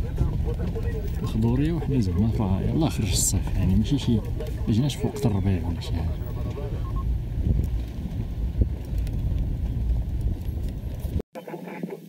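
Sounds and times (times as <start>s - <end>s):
vehicle rumble and buffeting: 0.0s - 11.2s.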